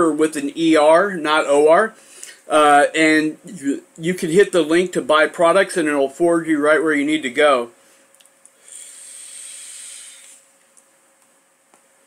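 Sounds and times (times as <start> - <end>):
air hissing through e-cigarette: 8.6 - 10.5.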